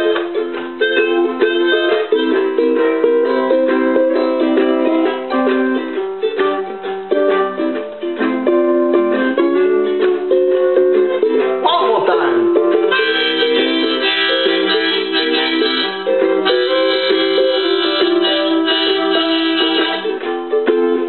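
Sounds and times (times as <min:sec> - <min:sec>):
harmonica playing: 0:00.0 - 0:20.8
ukulele strumming: 0:00.0 - 0:21.0.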